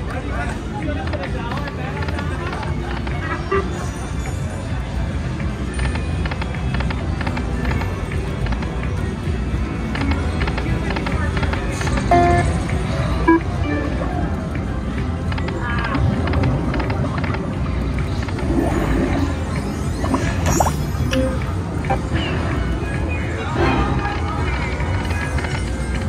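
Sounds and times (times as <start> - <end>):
background chatter: 0.0 - 20.3
casino machines din: 1.5 - 26.0
slot machine electronic music: 2.1 - 15.3, 15.9 - 26.0
short beeping tones: 12.1 - 12.5, 13.3 - 14.0, 20.0 - 22.0.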